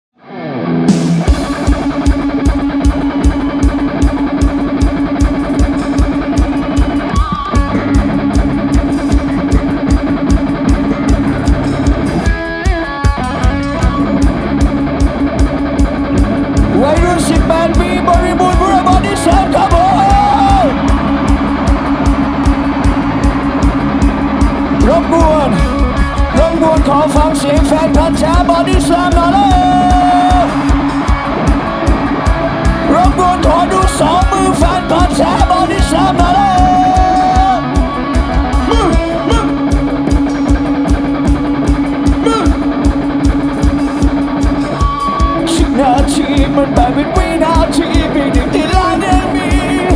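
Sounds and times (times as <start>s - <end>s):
electric guitars holding a chord: 0.2s - 49.9s
live rock band playing: 0.2s - 49.9s
singer shouting: 16.7s - 39.8s, 42.0s - 42.8s, 45.1s - 49.9s.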